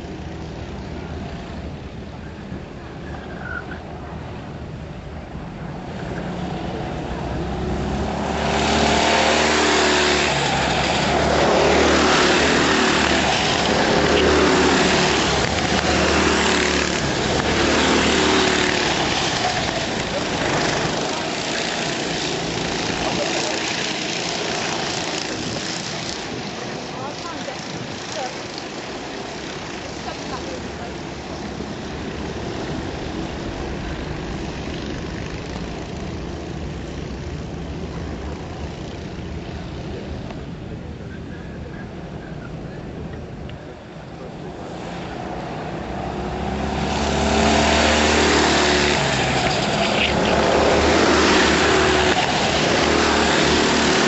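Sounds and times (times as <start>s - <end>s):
racing kart engines at full throttle: 0.0s - 54.0s.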